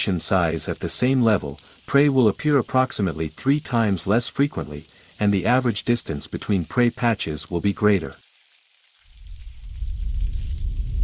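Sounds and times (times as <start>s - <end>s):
faint hiss: 0.0s - 11.0s.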